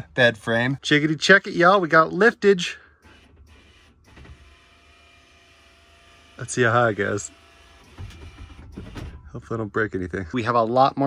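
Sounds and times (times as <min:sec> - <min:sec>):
electric motor whining: 0:03.1 - 0:09.0.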